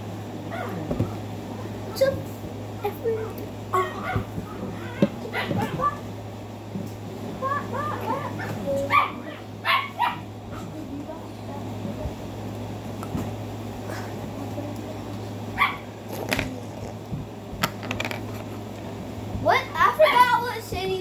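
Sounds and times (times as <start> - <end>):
steady low hum: 0.0 - 21.0
dog barking: 5.3 - 6.0, 8.4 - 10.7, 15.6 - 15.9.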